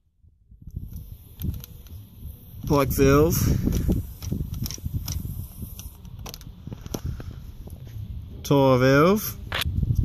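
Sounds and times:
wind rumble on microphone: 0:00.2 - 0:10.0.

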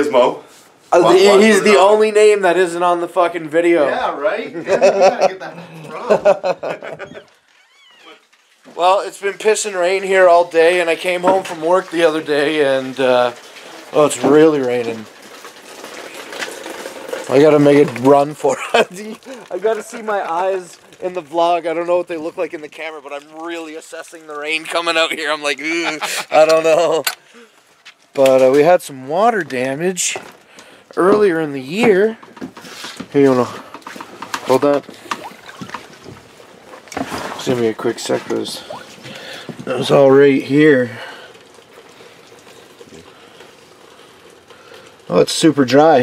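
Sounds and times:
heavy rain falling: 0:08.7 - 0:21.6.

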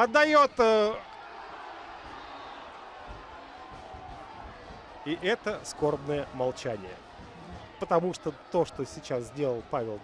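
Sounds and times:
sparse stadium crowd: 0:00.0 - 0:10.0.

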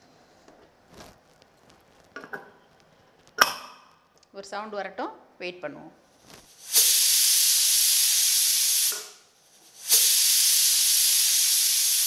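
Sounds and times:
pressure cooker whistle hissing: 0:06.5 - 0:12.0.

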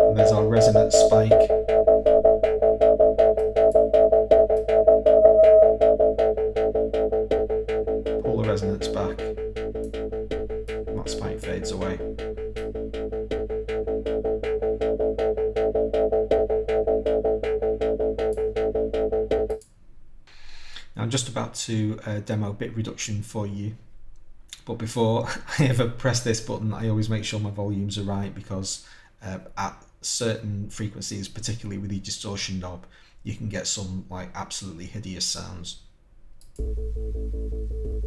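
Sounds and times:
filtered hand drum loop: 0:00.0 - 0:19.6
ringing mid-pitched tone: 0:00.0 - 0:19.6.

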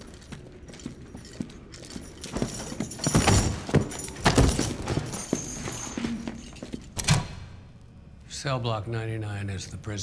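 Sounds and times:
footsteps on stone stairs: 0:00.0 - 0:06.9.

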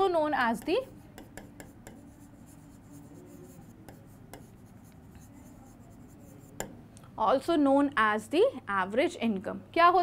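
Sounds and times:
marker pen scratching on board: 0:00.0 - 0:06.8.

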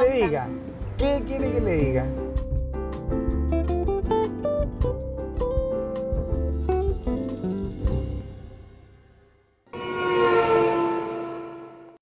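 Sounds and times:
held chord sting: 0:09.7 - 0:12.0.

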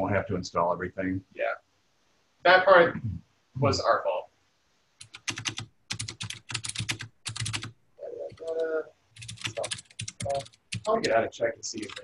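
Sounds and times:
computer keyboard typing: 0:05.0 - 0:11.2, 0:11.8 - 0:12.0.

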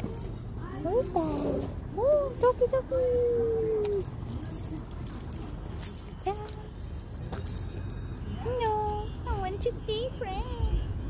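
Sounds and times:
dog harness hardware jingling: 0:00.0 - 0:08.2.

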